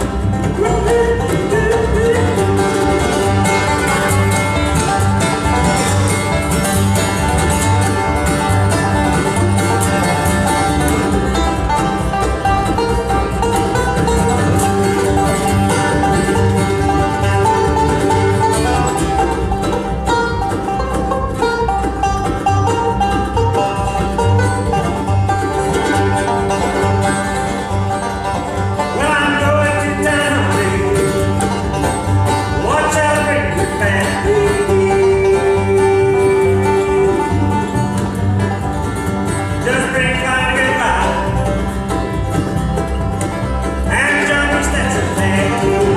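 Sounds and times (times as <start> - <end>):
acoustic guitar: 0.0 - 45.9
banjo: 0.0 - 45.9
mandolin: 0.0 - 45.9
upright bass: 0.0 - 45.9.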